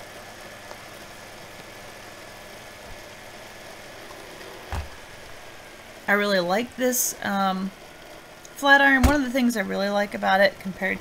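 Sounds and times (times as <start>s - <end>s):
room hum and hiss: 0.0s - 11.0s
short dull knock: 4.7s - 5.0s.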